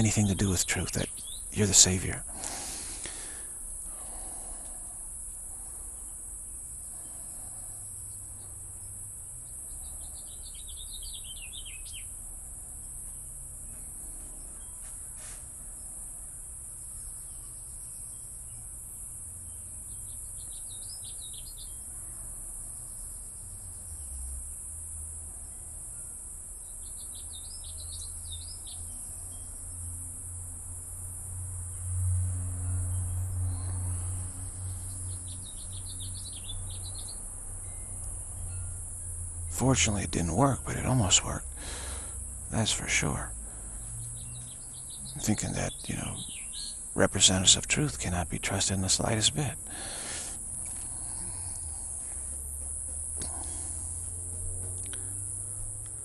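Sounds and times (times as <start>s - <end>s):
crickets chirping: 0.0s - 56.0s.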